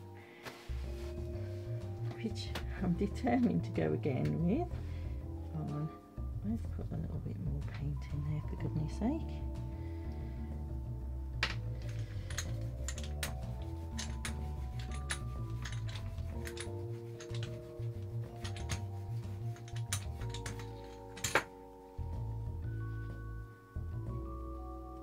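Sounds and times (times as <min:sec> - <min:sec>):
background music: 0:00.0 - 0:25.0
brayer clicking and tapping: 0:11.4 - 0:21.6.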